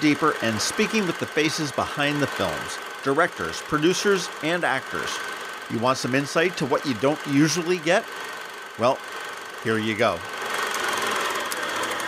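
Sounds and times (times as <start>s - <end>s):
small machine whirring rattle: 0.0s - 12.0s.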